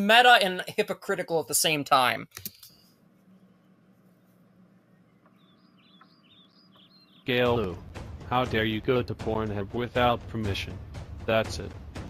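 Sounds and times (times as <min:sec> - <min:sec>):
small bird chirping: 0:03.2 - 0:07.8.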